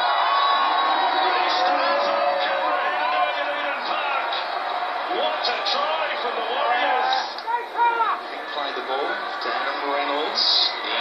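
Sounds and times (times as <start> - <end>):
stadium crowd noise: 0.0 - 11.0
man commentating: 0.7 - 11.0.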